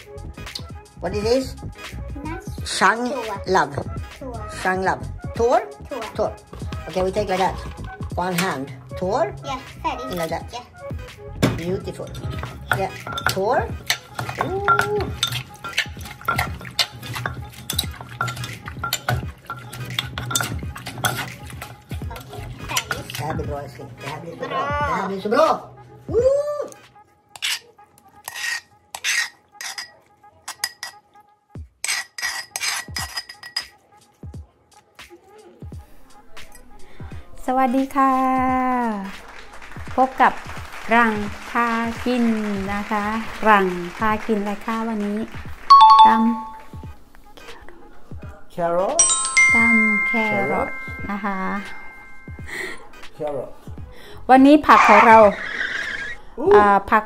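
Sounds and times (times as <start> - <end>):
spoon scraping bowl: 12.1 - 23.4, 27.3 - 31.0, 31.8 - 33.7
pestle pounding in mortar: 12.3 - 22.2
two-note ding-dong chime: 45.7 - 46.7, 49.0 - 52.4.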